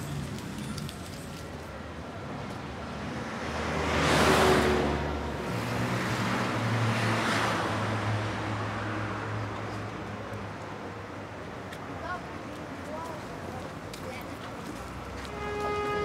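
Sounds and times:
vehicles passing: 0:00.0 - 0:16.0.

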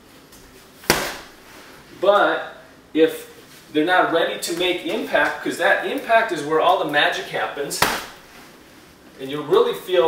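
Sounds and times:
kick smacking heavy bag: 0:00.8 - 0:01.4, 0:07.8 - 0:08.3.

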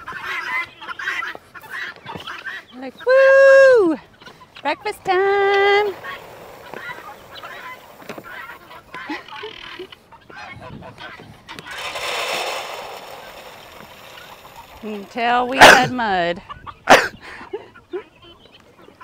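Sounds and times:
goose honking: 0:00.0 - 0:02.7, 0:04.2 - 0:11.9
faint poultry flock sounds: 0:00.0 - 0:19.0.

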